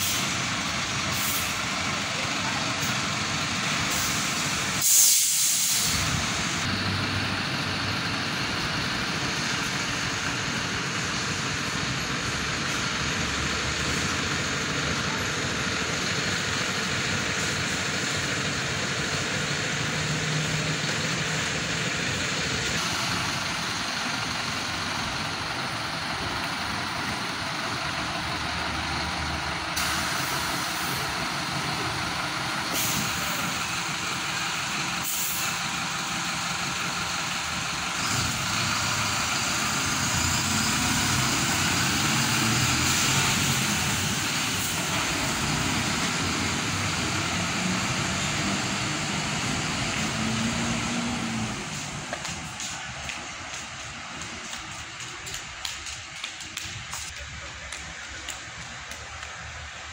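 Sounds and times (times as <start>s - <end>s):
air brakes hissing: 0.0s - 0.4s, 1.1s - 1.6s, 3.9s - 6.6s, 29.7s - 31.2s, 32.6s - 33.8s, 34.9s - 35.7s
bus engine running: 0.0s - 59.9s.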